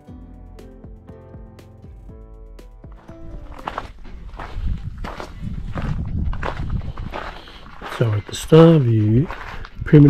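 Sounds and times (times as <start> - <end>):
footsteps walking: 2.9 - 10.0.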